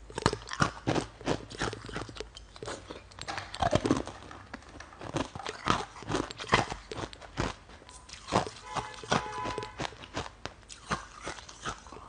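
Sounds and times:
ice being chewed: 0:00.0 - 0:12.0.

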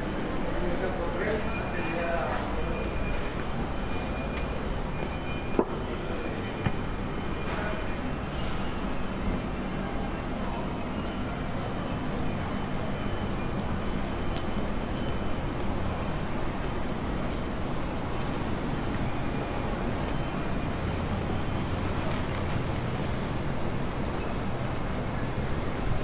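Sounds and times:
low rumble of traffic: 0:00.0 - 0:26.0.

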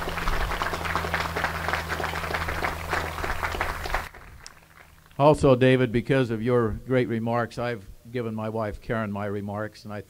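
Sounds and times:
audience applauding: 0:00.0 - 0:05.2
steady low hum: 0:00.0 - 0:10.0.

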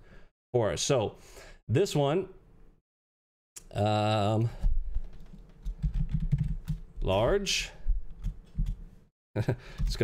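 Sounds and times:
computer keyboard typing: 0:05.2 - 0:06.8.

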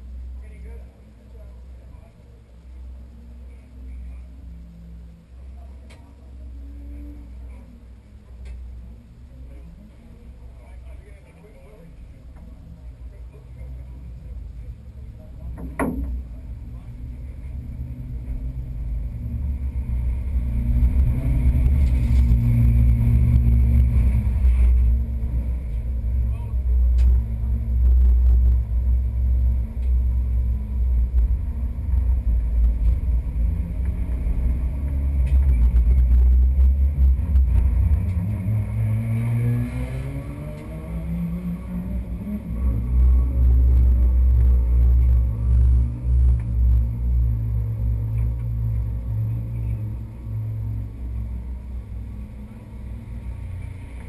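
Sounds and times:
race car engine idling and revving: 0:00.0 - 0:54.0.

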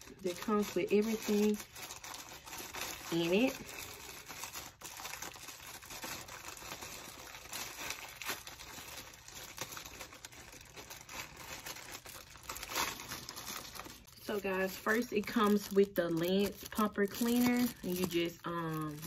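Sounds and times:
plastic packaging crinkling: 0:00.0 - 0:19.0.

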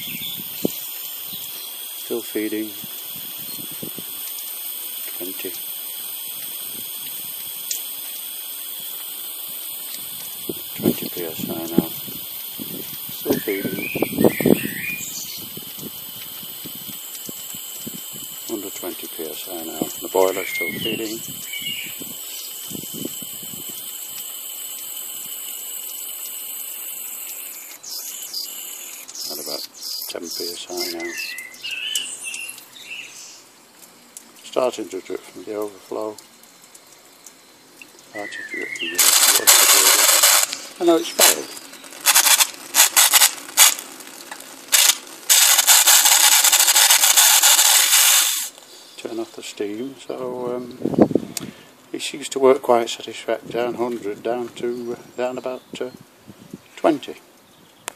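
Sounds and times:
steam injector hissing: 0:00.0 - 0:33.0, 0:37.2 - 0:49.1.

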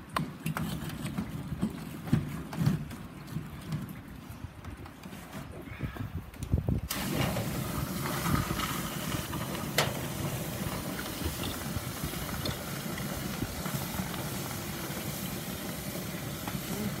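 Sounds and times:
water hissing into steam: 0:06.9 - 0:17.0.

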